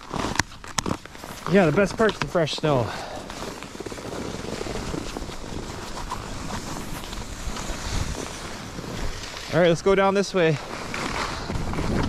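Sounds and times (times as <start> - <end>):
skis sliding on snow: 0.0 - 12.0
wind on microphone: 7.1 - 8.3, 11.4 - 12.0.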